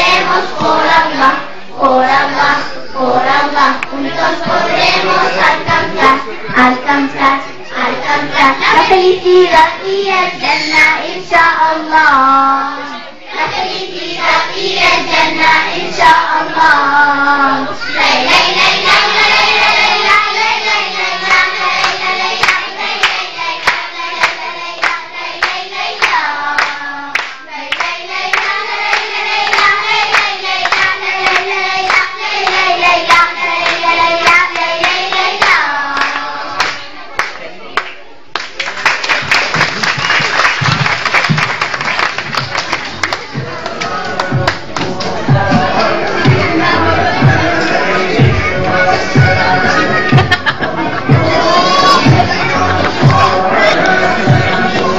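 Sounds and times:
girls' choir singing in unison: 0.0s - 37.0s, 42.6s - 54.9s
hand claps: 21.8s - 32.6s, 33.6s - 45.1s
audience applause: 37.8s - 44.6s.

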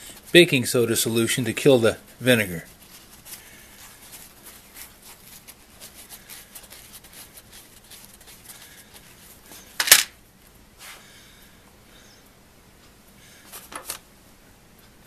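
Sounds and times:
paper towel rustling and crinkling: 0.0s - 9.8s.

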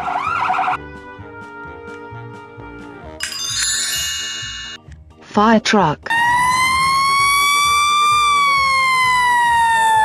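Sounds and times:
fire engine siren wailing: 0.0s - 0.8s, 6.1s - 10.0s.

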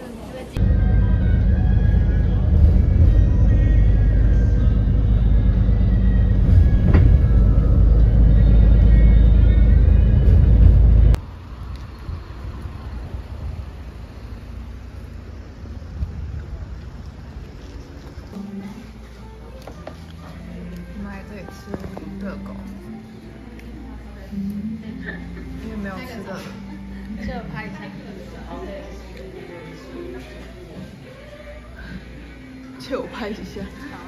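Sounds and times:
low rumble inside moving bus: 0.1s - 19.6s.

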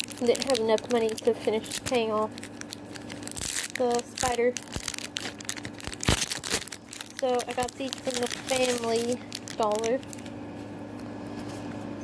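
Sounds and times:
foil wrappers crinkling: 0.0s - 10.7s.

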